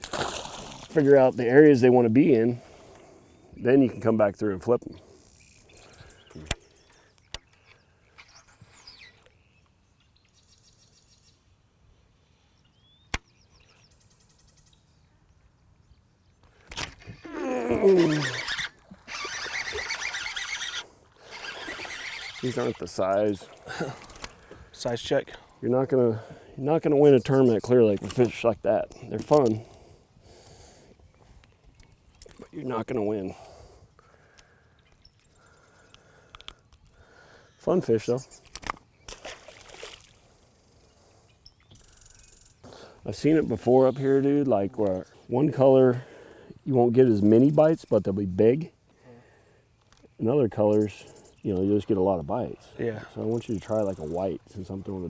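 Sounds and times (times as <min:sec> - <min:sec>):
faint bird chirps: 0:04.8 - 0:11.5, 0:12.3 - 0:24.4, 0:40.8 - 0:42.9.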